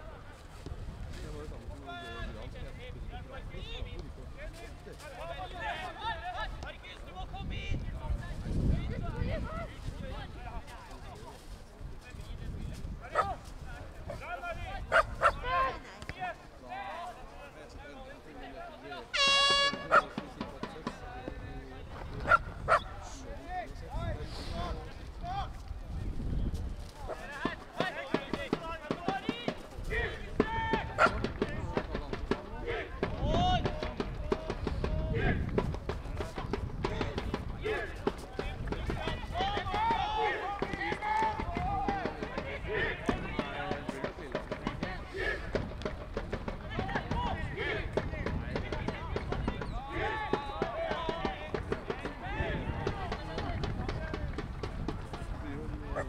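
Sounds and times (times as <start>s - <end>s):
voices calling and shouting: 0.0s - 56.0s.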